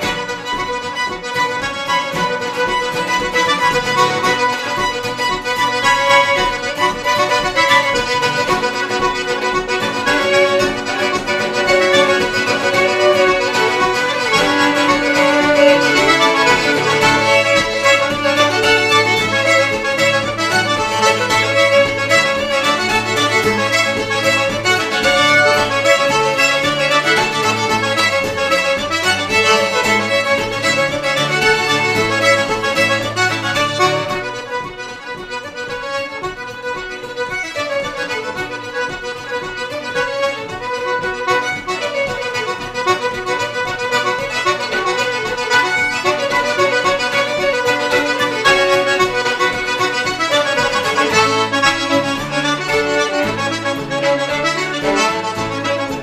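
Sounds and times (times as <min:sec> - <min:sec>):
acoustic guitar: 0:00.0 - 0:56.0
button accordion: 0:00.0 - 0:56.0
fiddle: 0:00.0 - 0:56.0.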